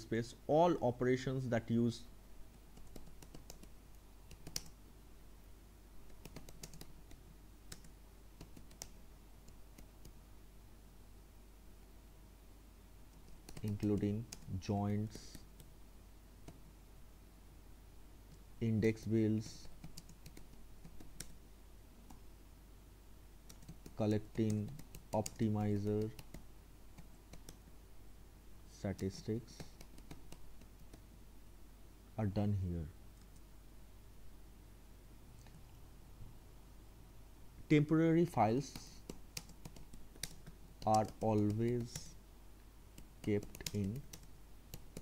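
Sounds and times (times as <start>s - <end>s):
faint keyboard typing: 2.5s - 4.8s, 6.0s - 10.2s, 13.1s - 15.8s, 16.4s - 16.7s, 18.3s - 21.4s, 23.4s - 27.6s, 28.9s - 31.1s, 33.1s - 33.5s, 38.2s - 42.2s, 42.9s - 45.0s.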